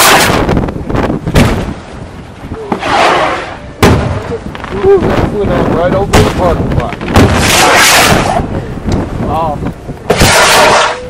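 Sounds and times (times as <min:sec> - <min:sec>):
noisy firework rush: 0:00.0 - 0:11.0.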